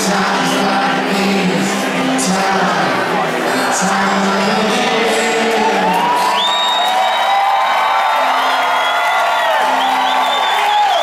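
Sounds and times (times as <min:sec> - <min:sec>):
stadium crowd cheering: 0:00.0 - 0:11.0
shrill whistles: 0:06.2 - 0:07.4, 0:08.3 - 0:11.0.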